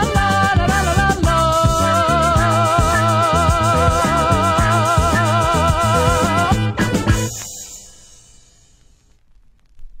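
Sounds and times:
funk-soul music ending: 0.0 - 8.2.

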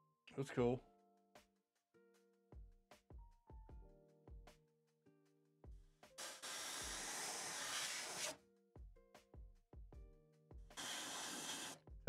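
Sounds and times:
background music with piano: 3.1 - 6.2
airbrush spraying hiss: 6.2 - 8.4, 10.8 - 11.8.

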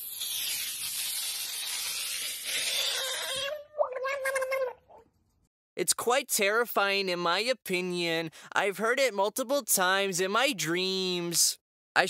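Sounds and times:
frog screaming: 2.5 - 5.0.

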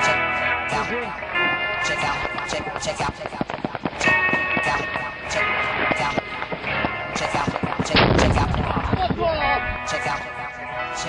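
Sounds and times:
rocket launcher blast: 7.8 - 9.2.

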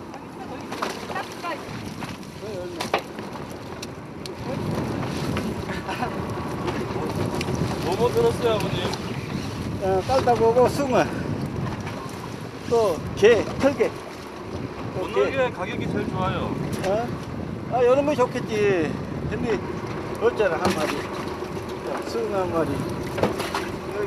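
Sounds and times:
wind rumble on microphone: 0.0 - 24.0.

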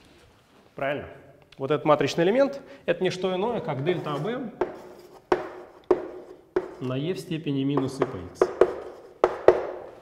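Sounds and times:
chalk tapping on blackboard: 4.0 - 7.1, 7.7 - 9.9.

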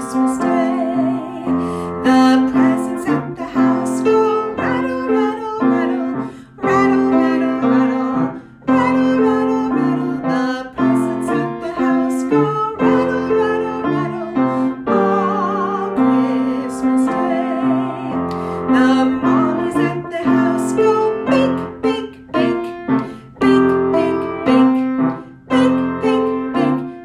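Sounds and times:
person singing: 0.0 - 27.0
piano music: 0.0 - 27.0.

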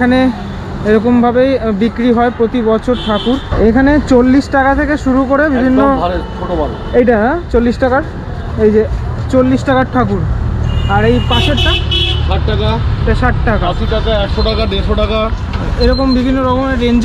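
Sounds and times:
voices talking: 0.0 - 17.0
car horn: 2.8 - 3.6, 10.6 - 12.4.

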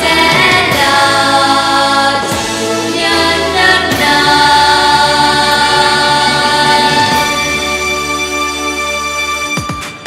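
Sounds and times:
children singing into microphones: 0.0 - 7.9
instrumental accompaniment: 0.0 - 10.0.

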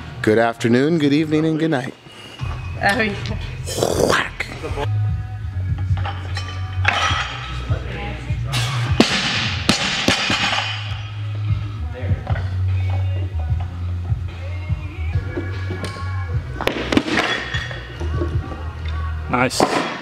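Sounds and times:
background music with bass line: 2.4 - 19.6.

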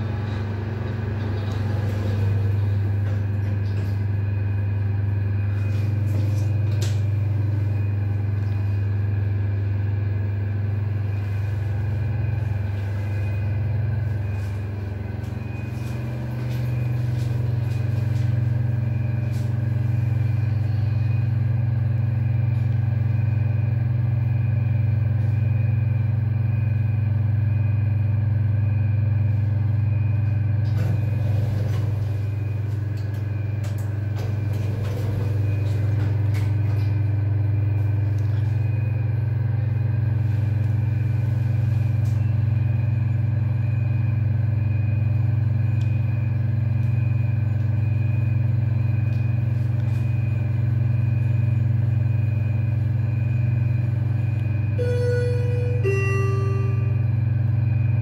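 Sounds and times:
elevator low hum: 0.0 - 58.0
faint pulsing high whine: 0.0 - 58.0.

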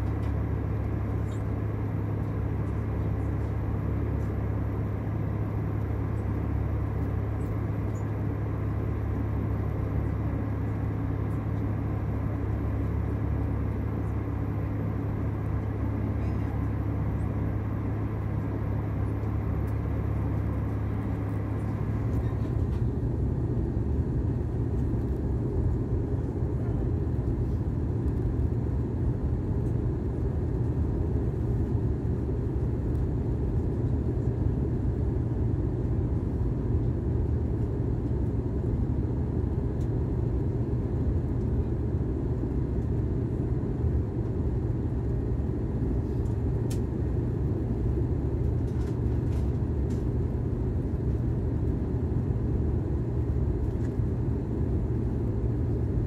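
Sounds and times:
jet engine rumble: 0.0 - 56.0.

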